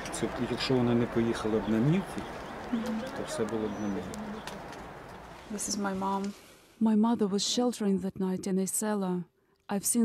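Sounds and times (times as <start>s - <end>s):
man speaking in a low voice: 0.0s - 2.3s, 3.0s - 4.2s.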